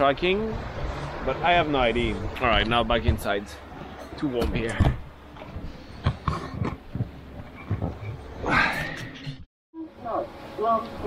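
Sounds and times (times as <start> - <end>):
wind rumble on microphone: 0.2 - 8.8
camera and body knocks and bumps: 4.4 - 8.3.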